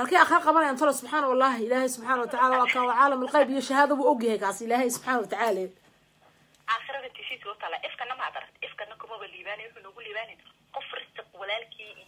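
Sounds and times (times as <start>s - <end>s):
person speaking over telephone: 6.7s - 12.0s.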